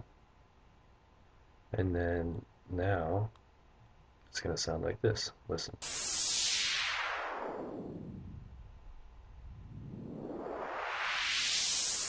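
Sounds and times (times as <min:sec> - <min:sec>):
synthesized noise filter sweep: 0:05.8 - 0:12.0.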